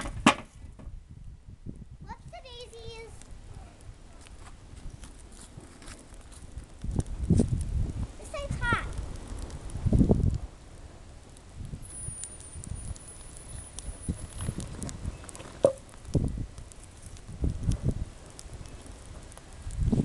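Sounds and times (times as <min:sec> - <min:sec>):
logs crackling in fire: 0:00.0 - 0:20.0
sharp snap of burning wood: 0:00.0 - 0:20.0.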